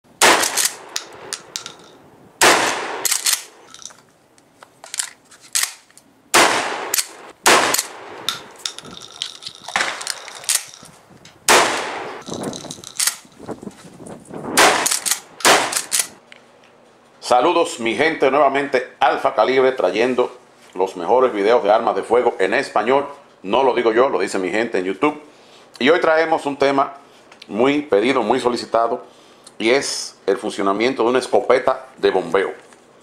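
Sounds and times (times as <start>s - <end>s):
shotgun shots echoing: 0.2s - 3.7s, 5.6s - 8.6s, 9.7s - 10.8s, 11.5s - 12.3s, 14.6s - 16.2s.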